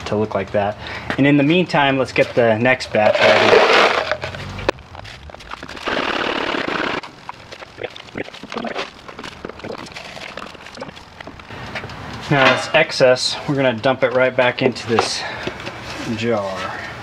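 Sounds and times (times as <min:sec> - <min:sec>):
metal bullets rattling: 0:02.2 - 0:11.4.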